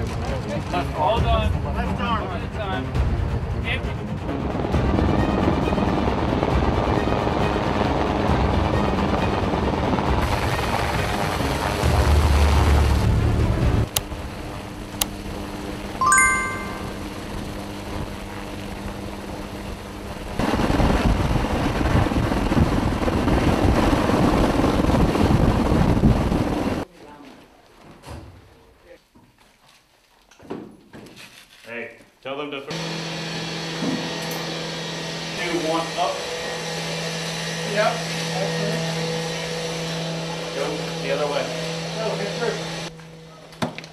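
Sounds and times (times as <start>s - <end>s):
helicopter rotor and engine: 35.3s - 43.5s.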